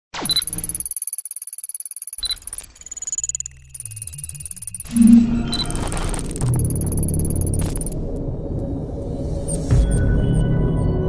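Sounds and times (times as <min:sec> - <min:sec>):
electronic blips: 0:00.2 - 0:08.2
high steady electronic tones: 0:00.3 - 0:08.2
low electronic tones: 0:03.8 - 0:08.3.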